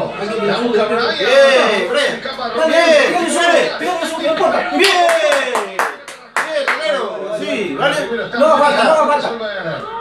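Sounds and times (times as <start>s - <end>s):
man clapping hands: 4.8s - 6.8s.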